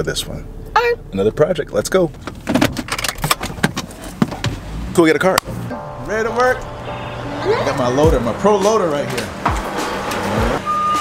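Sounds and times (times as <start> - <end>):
low car hum: 0.0 - 11.0.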